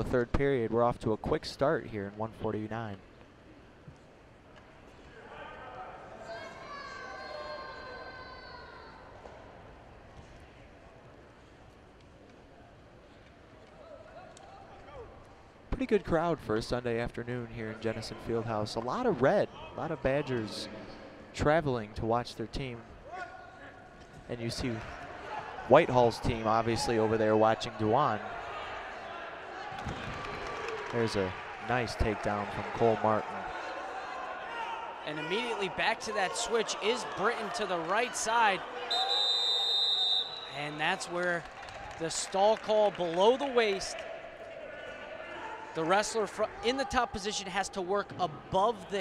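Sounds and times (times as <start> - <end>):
arena crowd murmur: 24.5 - 49.0
spectators shouting: 31.4 - 40.7.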